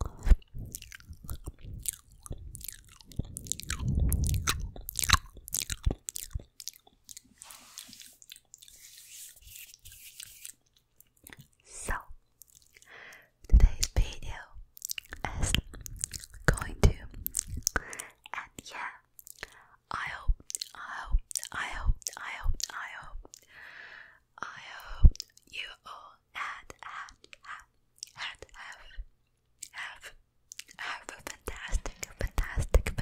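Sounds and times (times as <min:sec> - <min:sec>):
person whispering: 0:00.0 - 0:06.0, 0:11.6 - 0:12.2, 0:13.5 - 0:15.8, 0:16.4 - 0:19.1, 0:24.6 - 0:33.0
wet mouth clicks and smacks: 0:00.0 - 0:08.8, 0:12.4 - 0:14.1, 0:14.8 - 0:18.4, 0:19.2 - 0:19.6, 0:20.4 - 0:23.5, 0:25.1 - 0:25.5, 0:30.5 - 0:30.8.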